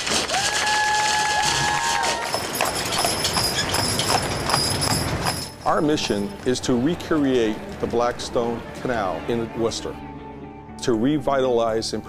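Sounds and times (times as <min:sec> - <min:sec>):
horse hooves clip-clopping on pavement: 0:00.0 - 0:09.2.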